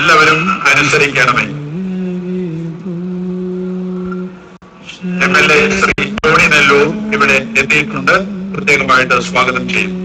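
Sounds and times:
man chanting: 0.0 - 4.0, 4.9 - 10.0.

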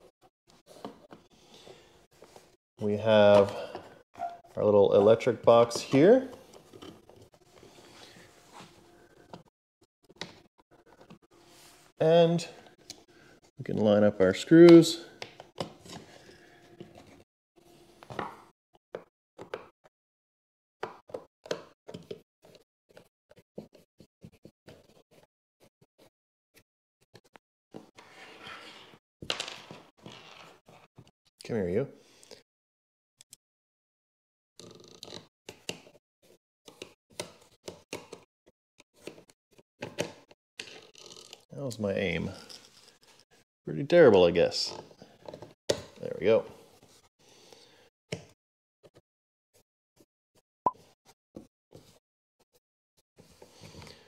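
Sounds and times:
knocks taps and scrapes of handling: 44.7 - 46.0.

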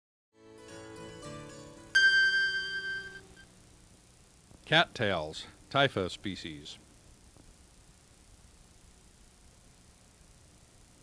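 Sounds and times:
intro music: 0.5 - 3.4
bright bell-like chime: 2.0 - 3.4.

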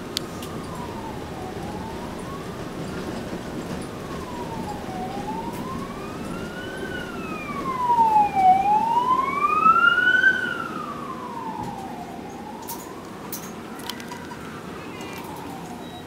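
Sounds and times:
bus running rumble: 0.0 - 16.0
siren wailing: 0.0 - 16.0.

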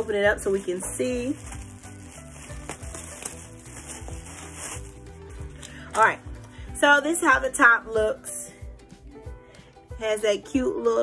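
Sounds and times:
plastic package rustling: 0.0 - 6.4
background music: 0.0 - 11.0.

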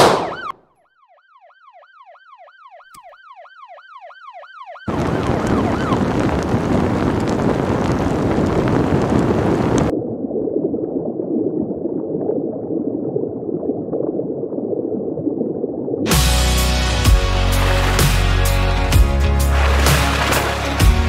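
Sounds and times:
emergency siren yelping: 0.0 - 6.8
rushing bubbling underwater sound: 19.4 - 21.0.

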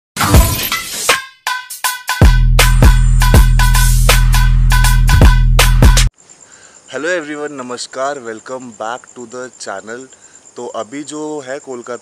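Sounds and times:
intro music: 0.2 - 6.1.

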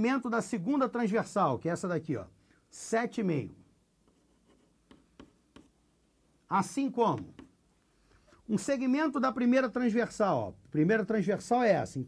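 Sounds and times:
chalk writing on chalkboard: 4.0 - 5.9, 7.1 - 7.6.

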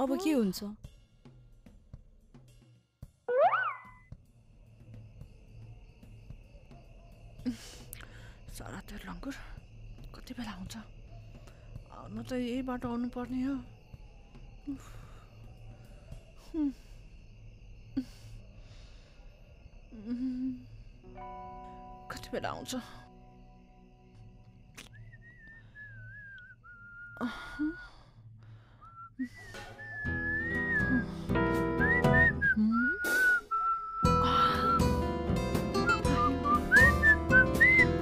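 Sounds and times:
cartoon boing sound effect: 3.3 - 4.0
faint high tone: 3.3 - 4.0
woman humming: 16.5 - 16.8, 19.9 - 20.7, 30.7 - 31.1, 32.4 - 33.4, 34.0 - 34.8.

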